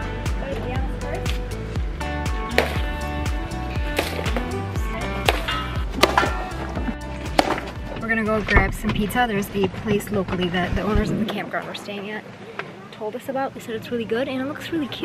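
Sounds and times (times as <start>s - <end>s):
background music with steady beat: 0.0s - 9.0s
stick whacking a pinata: 2.5s - 3.0s, 3.9s - 4.6s, 5.2s - 6.5s, 7.4s - 7.8s.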